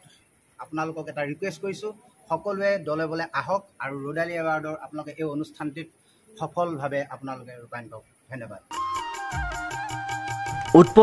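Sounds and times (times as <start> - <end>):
music with ticking beat: 8.8 - 11.0
man speaking: 10.7 - 11.0.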